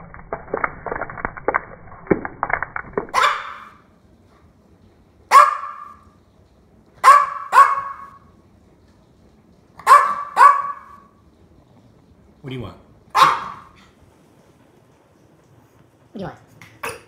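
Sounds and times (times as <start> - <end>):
small dog barking: 3.2 - 3.8, 5.3 - 6.0, 7.0 - 8.2, 9.8 - 11.1, 13.1 - 13.8.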